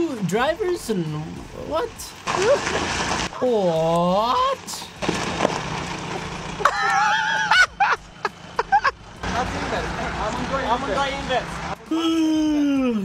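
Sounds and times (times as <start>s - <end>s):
low engine hum: 4.6s - 11.9s.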